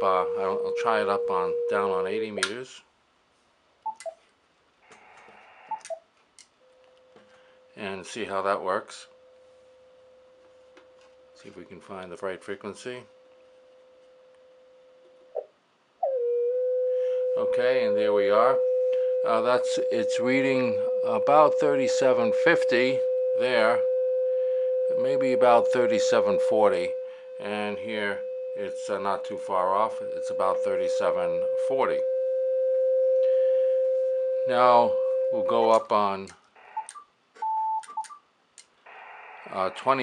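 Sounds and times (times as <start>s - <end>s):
radio beat note whistle: 17.0s - 36.0s.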